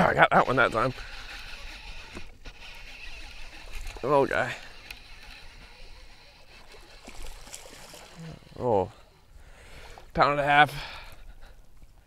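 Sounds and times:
water around boat: 0.0s - 12.0s
wind: 0.0s - 12.0s.

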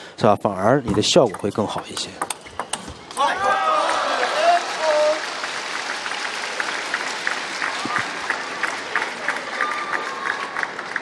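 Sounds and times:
table tennis ball ticking: 0.8s - 2.9s
crowd cheering and applauding: 3.2s - 11.0s.

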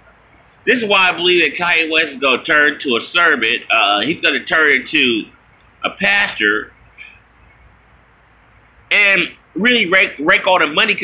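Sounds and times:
man speaking: 0.7s - 6.8s, 8.9s - 11.0s.

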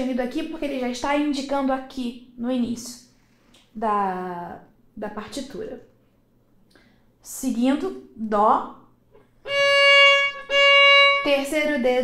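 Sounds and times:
violin bowed notes: 9.4s - 12.0s.

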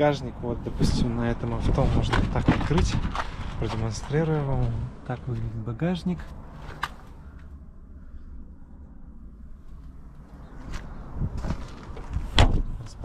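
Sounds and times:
car door slamming: 12.3s - 12.8s.

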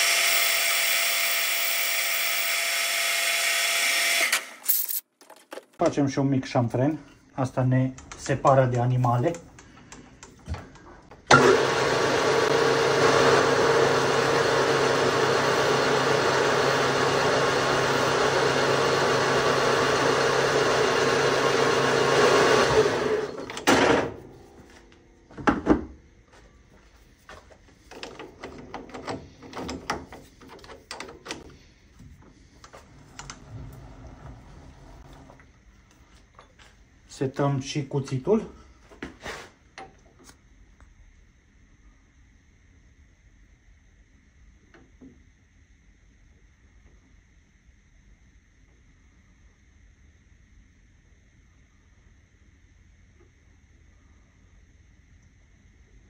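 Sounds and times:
metal lathe running: 11.3s - 23.4s, 32.7s - 35.4s
tools knocking and clicking: 27.9s - 31.5s.

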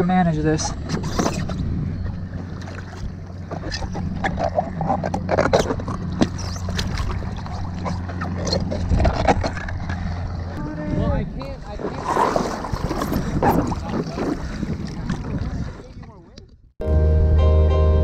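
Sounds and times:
water splashing: 0.5s - 10.6s, 11.3s - 16.5s.

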